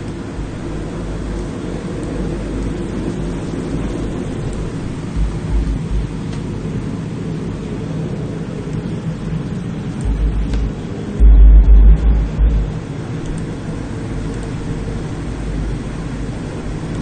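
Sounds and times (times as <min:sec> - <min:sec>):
low rumbling: 0:04.9 - 0:06.2, 0:10.0 - 0:13.8
deep thumps: 0:05.2 - 0:06.1, 0:10.0 - 0:12.9.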